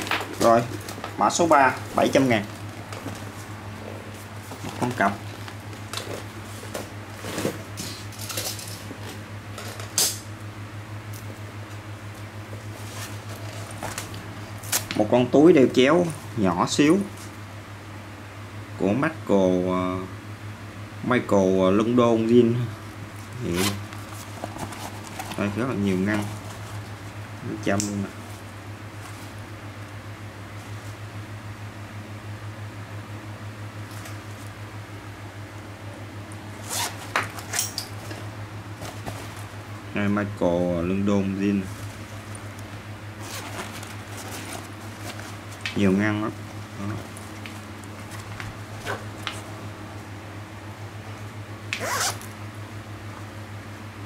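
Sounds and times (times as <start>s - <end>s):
steady low hum: 0.0s - 54.0s
zipper rasp: 36.6s - 37.0s, 51.8s - 52.3s.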